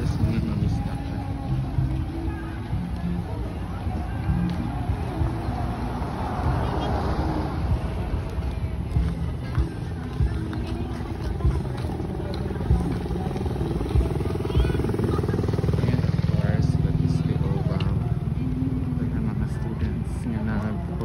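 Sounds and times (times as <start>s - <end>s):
people's voices: 0.0s - 21.0s
vehicle engine passing: 3.2s - 20.2s.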